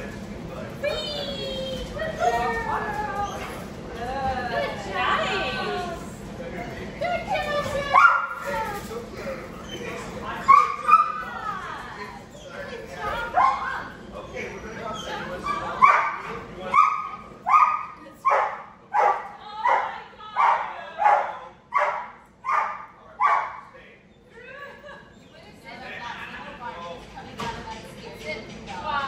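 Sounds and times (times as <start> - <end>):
dog barking: 15.8 - 23.6.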